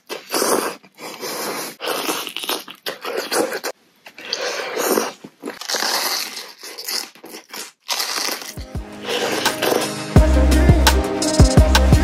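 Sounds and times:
crunching eating sounds: 0.0 - 10.0
music with low bass hits: 10.0 - 12.0.

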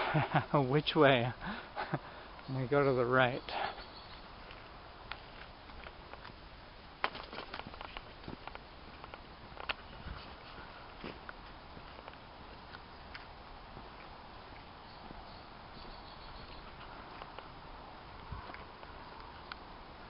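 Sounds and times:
footsteps on dirt trail: 7.0 - 19.4.

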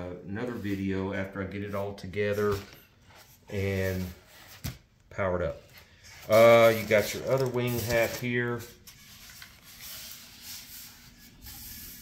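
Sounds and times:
foam rubbing against styrofoam: 6.3 - 12.0.

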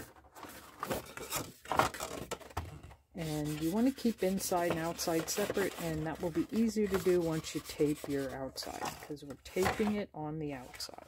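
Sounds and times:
card folder rustling and scraping: 0.0 - 11.0.

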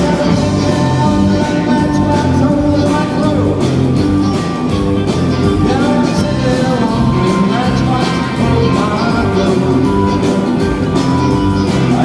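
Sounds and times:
male lead vocal: 0.0 - 4.0, 5.4 - 11.0, 11.6 - 12.0
rock band playing: 0.0 - 12.0.

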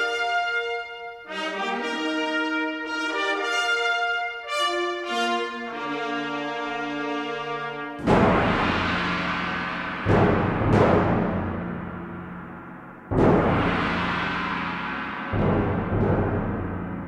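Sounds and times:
orchestral music: 0.0 - 17.0
heavy percussion hits: 8.0 - 17.0.

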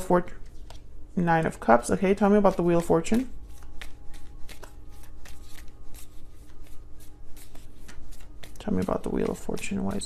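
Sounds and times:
cards being shuffled: 0.4 - 10.0.

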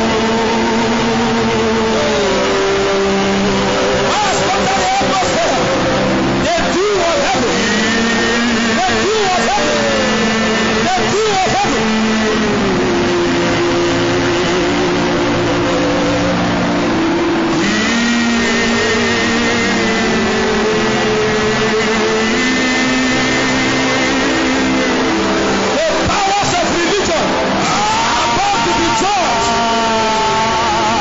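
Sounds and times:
congregation praying aloud: 0.0 - 31.0
sustained keyboard chords: 0.0 - 31.0.

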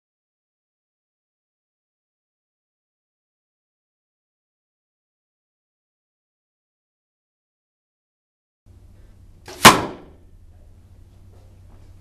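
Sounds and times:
arrow smacking into target: 9.5 - 10.2.

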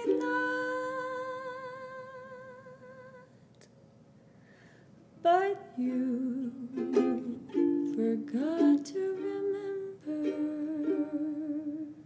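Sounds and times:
ukulele chords: 0.0 - 1.9, 5.8 - 12.0
woman singing with vibrato: 0.0 - 3.4, 5.2 - 12.0.

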